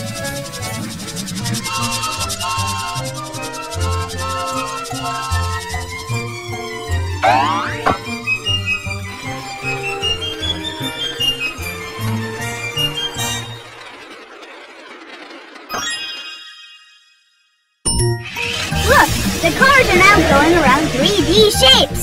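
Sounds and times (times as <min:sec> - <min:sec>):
cheerful children's music: 0:01.6 - 0:13.6, 0:17.9 - 0:22.0
springy boing: 0:07.2 - 0:08.0.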